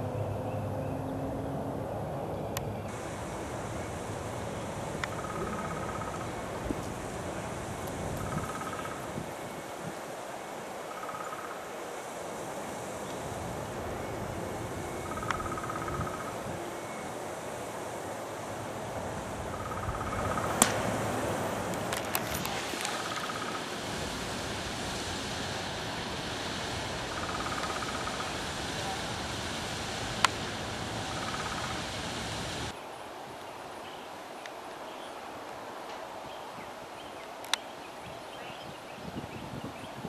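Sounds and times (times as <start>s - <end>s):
steady hiss: 2.9s - 40.0s.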